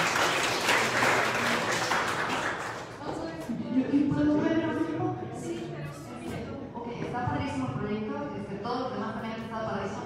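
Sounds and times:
crowd applauding: 0.0 - 3.0.

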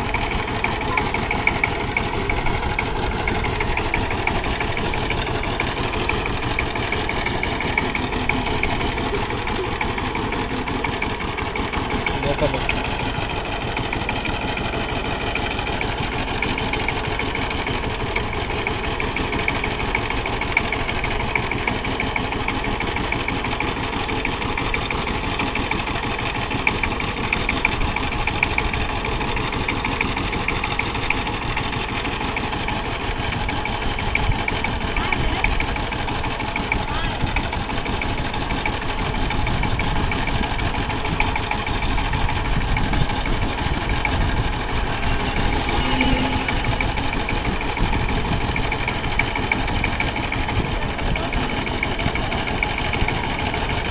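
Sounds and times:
diesel tiller engine chugging: 0.0 - 53.9.

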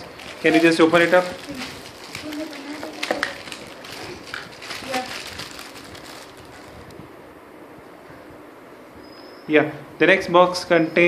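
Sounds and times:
cardboard and plastic packaging handled: 0.0 - 7.0.

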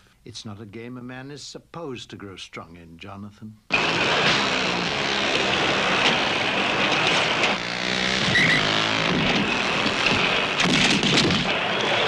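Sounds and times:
dense action noise: 3.7 - 12.0
motorcycle engines running: 3.7 - 12.0
sharp knocks: 8.2 - 11.5.

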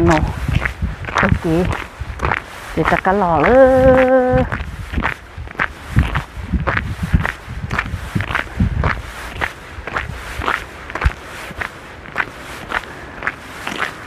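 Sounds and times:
footsteps crunching in snow: 0.0 - 14.0.

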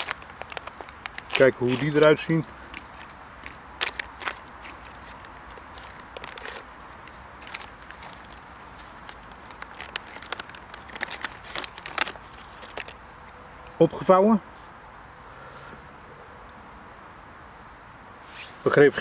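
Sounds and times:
foil pouch crinkling: 0.0 - 13.4.

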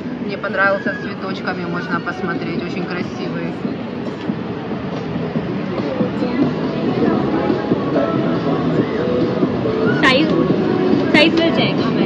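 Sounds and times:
muffled voices: 0.0 - 12.0
rumbling background din: 0.0 - 12.0.

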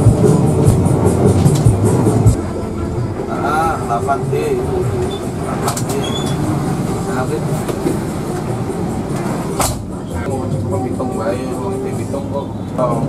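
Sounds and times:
bus diesel engine running: 0.0 - 13.0
cabin rattle: 4.7 - 10.3.

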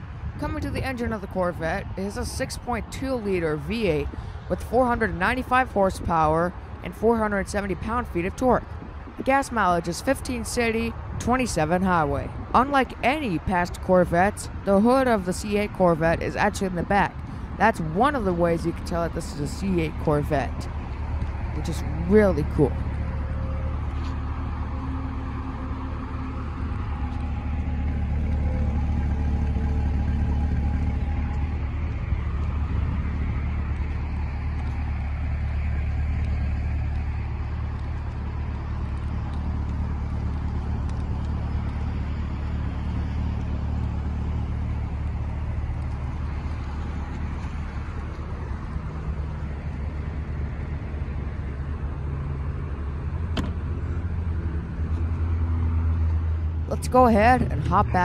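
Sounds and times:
car engine idling: 17.2 - 58.0.

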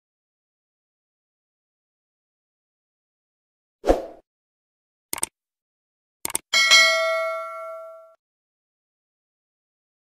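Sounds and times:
mouse clicks: 6.2 - 6.4
bell ding: 6.6 - 8.2.

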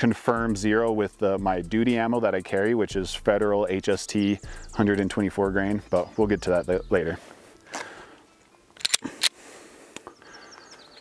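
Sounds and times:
sharp metallic pistol clicks: 8.8 - 9.4.

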